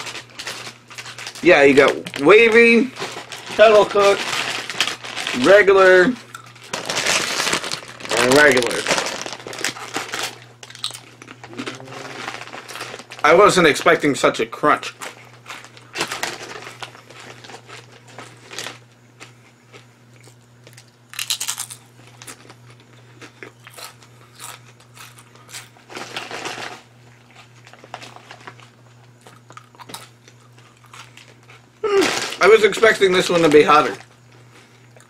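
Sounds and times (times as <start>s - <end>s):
chewing crunchy potato chips: 0.0s - 14.0s, 14.8s - 35.0s.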